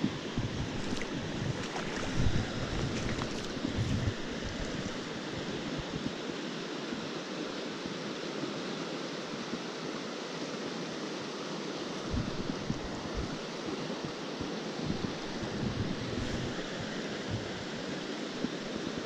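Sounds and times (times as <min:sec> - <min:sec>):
low wind rumble on microphone: 0:00.0 - 0:07.6, 0:12.0 - 0:19.0
stream rushing over rocks: 0:00.0 - 0:19.0.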